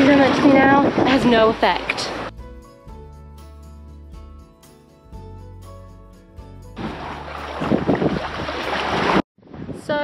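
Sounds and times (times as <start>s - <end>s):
wind buffeting microphone: 0.0s - 2.3s, 6.8s - 10.0s
background music: 1.3s - 8.0s.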